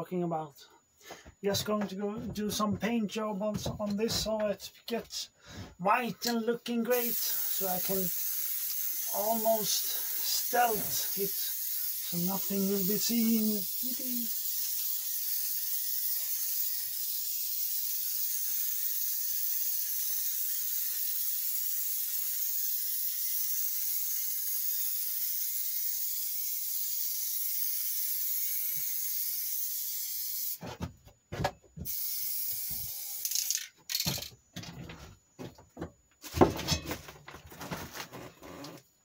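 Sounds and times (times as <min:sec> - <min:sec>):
spray-paint can hissing: 0:06.2 - 0:30.6, 0:31.8 - 0:34.0.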